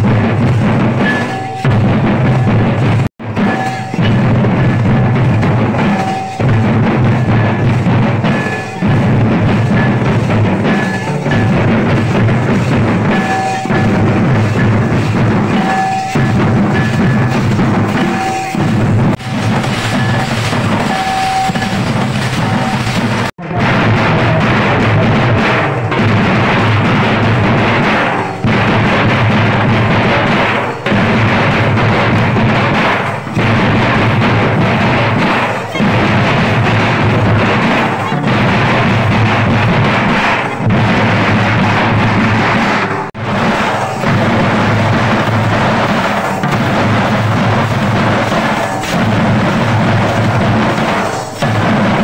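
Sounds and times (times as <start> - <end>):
barrel drums beaten: 0.0 - 52.0
cymbals: 0.0 - 52.0.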